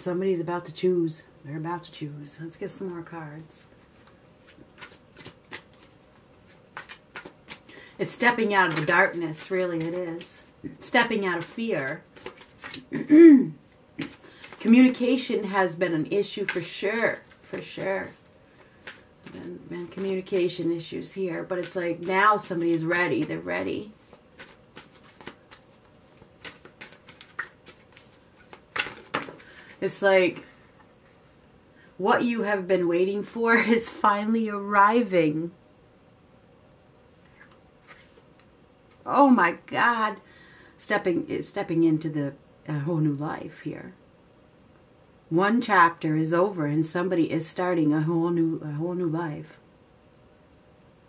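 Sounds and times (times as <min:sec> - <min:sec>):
cards being shuffled: 0:03.8 - 0:13.0, 0:13.6 - 0:30.4, 0:37.3 - 0:39.0
card flicks and slaps: 0:06.7 - 0:07.7, 0:26.4 - 0:29.4.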